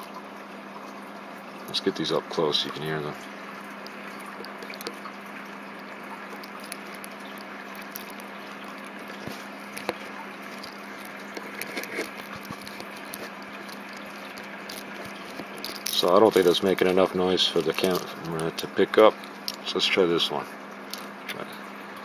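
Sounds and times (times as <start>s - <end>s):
faint handling clicks: 5.8s - 19.7s.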